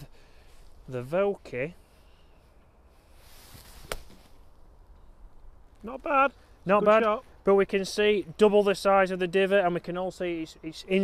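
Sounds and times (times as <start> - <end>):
golf club swish: 3.2 - 4.4
club striking sand: 3.5 - 4.3.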